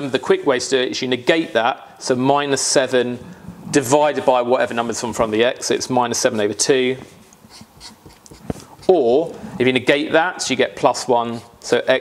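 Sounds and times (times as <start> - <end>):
marker scratching on paper: 6.1 - 9.4.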